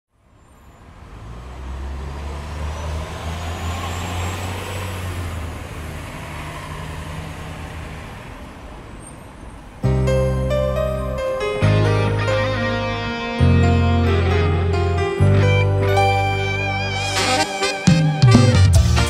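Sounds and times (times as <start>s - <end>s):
vehicle rumble: 0.2s - 17.6s
cumbia music: 9.9s - 19.0s.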